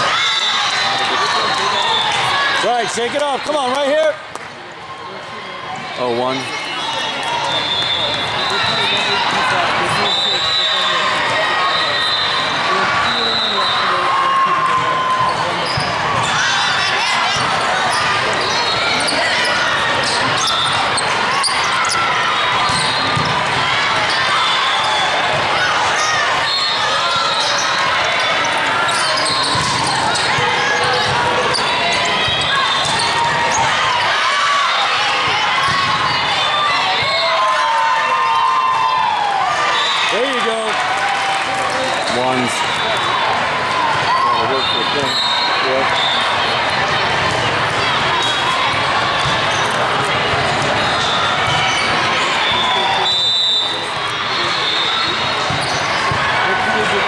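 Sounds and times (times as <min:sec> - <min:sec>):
chatter and calls: 0:00.0 - 0:57.0
sneakers squeaking: 0:15.2 - 0:34.1, 0:35.3 - 0:37.4, 0:44.1 - 0:56.3
high whistle tones: 0:52.4 - 0:53.8.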